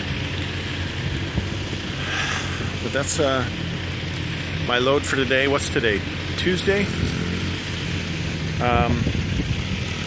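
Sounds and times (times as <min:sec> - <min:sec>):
low continuous rumble: 0:00.0 - 0:10.0
wind buffeting microphone: 0:00.9 - 0:02.8, 0:08.6 - 0:10.0.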